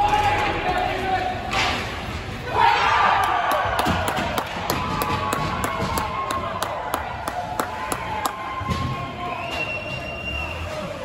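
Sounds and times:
spectators cheering: 0:02.5 - 0:11.0
people clapping: 0:03.2 - 0:08.6.

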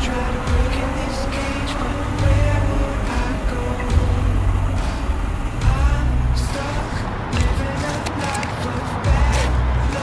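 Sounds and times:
heavy vehicle low rumble: 0:00.0 - 0:10.0.

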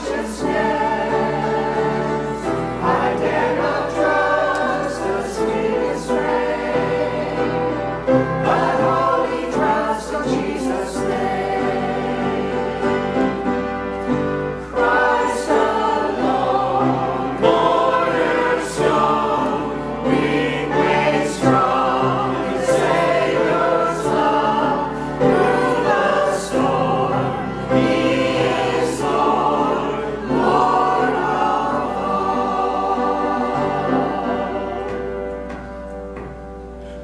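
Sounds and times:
mixed choir singing: 0:00.0 - 0:36.3.

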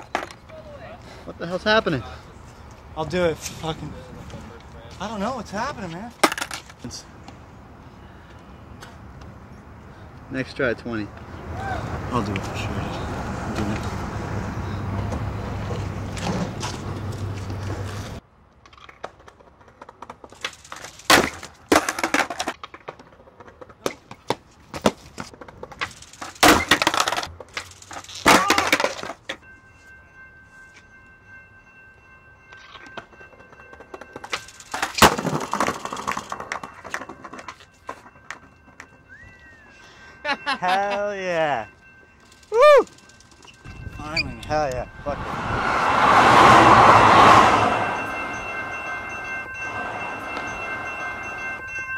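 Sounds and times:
skateboard wheels rolling: 0:13.2 - 0:29.4.

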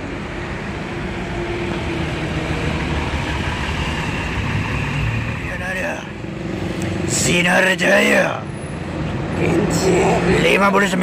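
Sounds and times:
coach engine and tyre noise: 0:00.0 - 0:11.0.

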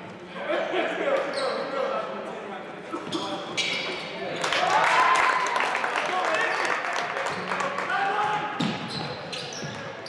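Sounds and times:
sneakers squeaking: 0:01.2 - 0:01.8, 0:02.9 - 0:04.5, 0:08.6 - 0:10.0.

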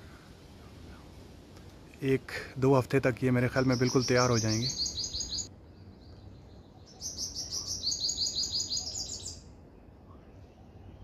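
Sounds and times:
songbird singing high notes: 0:03.5 - 0:09.6.

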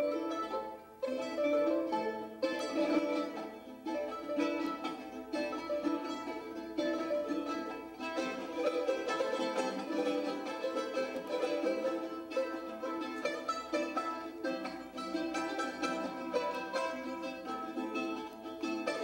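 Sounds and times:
plucked string instrument duet: 0:00.0 - 0:19.0.

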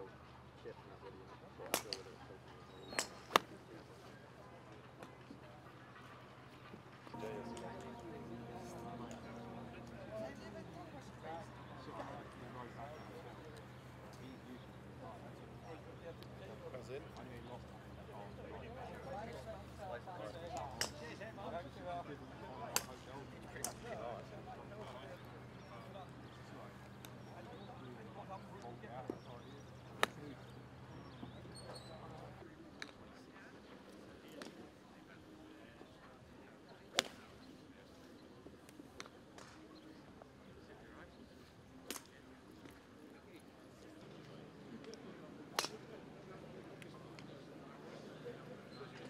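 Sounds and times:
indistinct background voices: 0:07.1 - 0:16.1.

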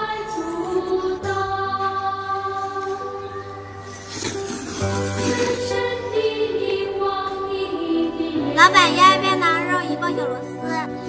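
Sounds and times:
noisy slurp of noodles: 0:03.8 - 0:05.8.

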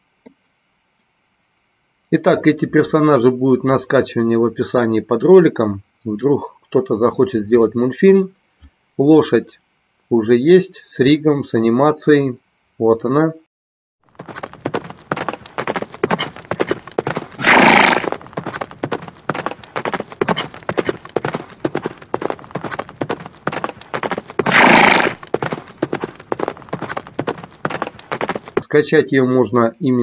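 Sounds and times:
horse hoofbeats galloping: 0:14.1 - 0:28.8
horse whinnying: 0:14.6 - 0:28.6.

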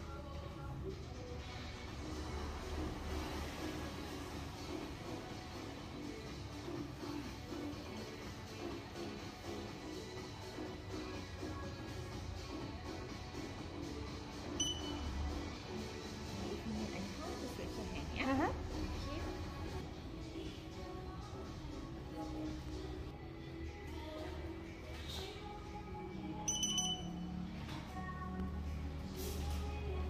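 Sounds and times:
background music: 0:00.0 - 0:30.0
short electronic beep: 0:14.6 - 0:15.1, 0:26.5 - 0:27.3.

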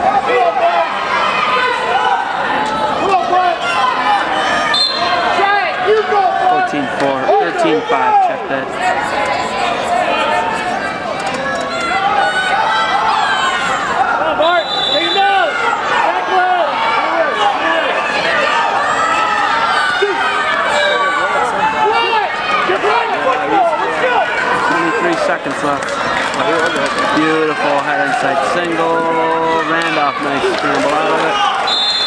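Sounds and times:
crowd shouting and talking: 0:00.0 - 0:32.0.

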